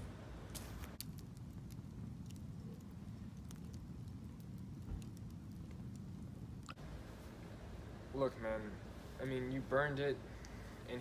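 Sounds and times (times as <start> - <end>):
low fire rumble: 0.0 - 11.0
wood fire crackling and popping: 0.0 - 11.0.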